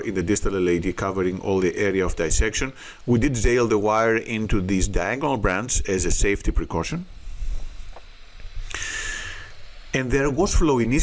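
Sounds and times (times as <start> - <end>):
short soft hiss: 7.1 - 10.0.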